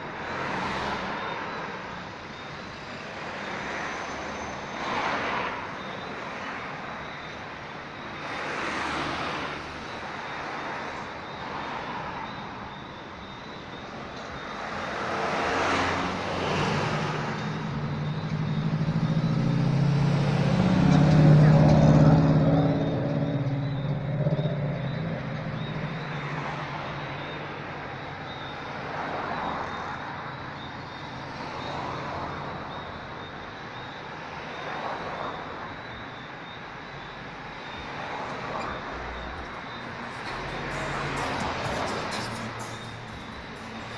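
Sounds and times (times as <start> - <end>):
vehicles passing: 0.0 - 43.9.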